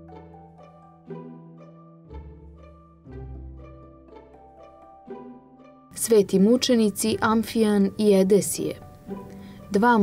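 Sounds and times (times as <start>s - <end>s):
string melody: 0.0s - 10.0s.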